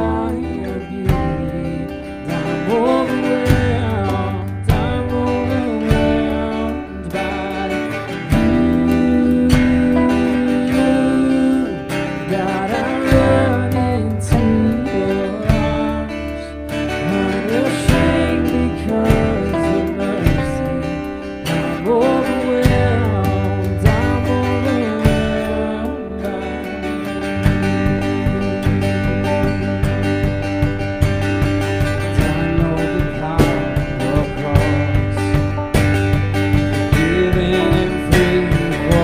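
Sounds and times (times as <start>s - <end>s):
person singing: 0.0s - 30.7s, 31.6s - 39.0s
drum kit: 0.0s - 39.0s
strummed acoustic guitar: 0.0s - 39.0s.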